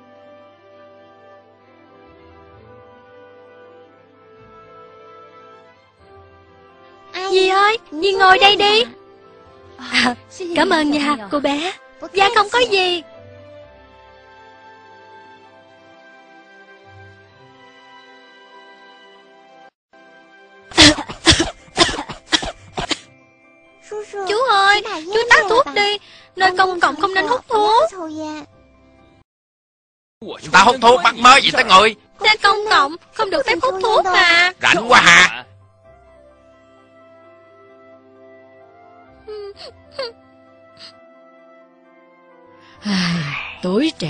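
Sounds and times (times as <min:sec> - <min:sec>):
background music: 0:00.0 - 0:29.2, 0:30.2 - 0:44.0
child coughing: 0:20.7 - 0:23.1.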